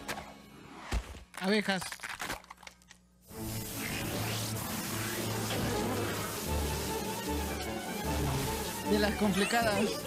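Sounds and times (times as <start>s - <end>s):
background music: 3.2s - 10.0s
cartoon bees buzzing: 3.3s - 10.0s.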